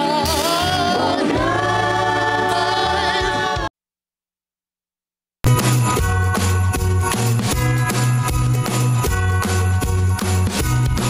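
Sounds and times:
gospel vocal group singing: 0.0s - 3.7s
live band playing: 0.0s - 3.7s, 5.5s - 11.0s.

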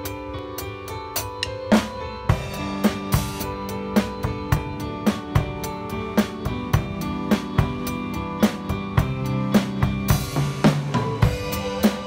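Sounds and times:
acoustic drum kit playing: 0.0s - 12.0s.

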